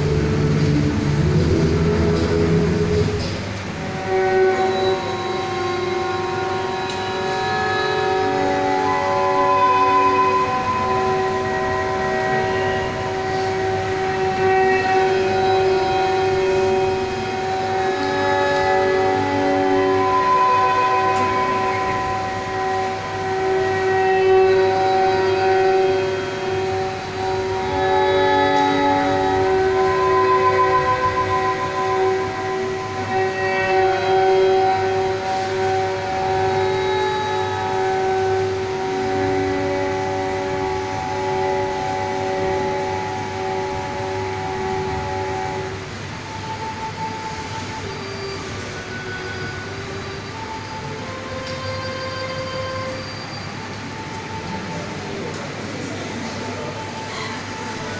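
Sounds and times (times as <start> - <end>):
backing track over loudspeakers: 0.0 - 57.9.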